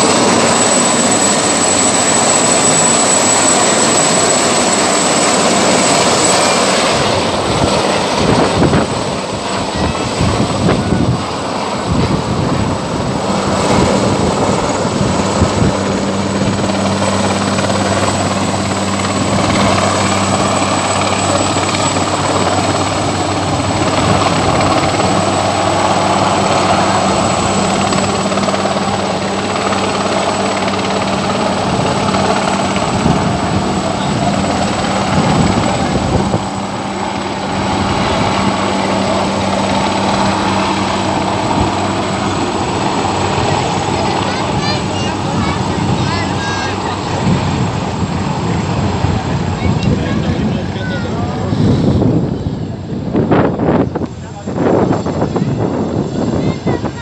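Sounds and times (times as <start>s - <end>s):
helicopter hovering overhead: 0.0s - 57.0s
high turbine whine: 0.0s - 57.0s.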